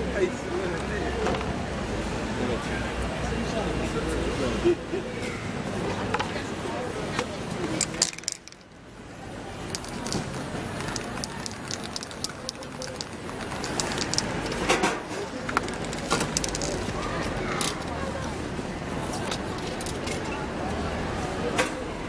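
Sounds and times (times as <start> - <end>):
indistinct voices: 0.0 - 21.8
sharp clicks and taps: 9.6 - 16.9.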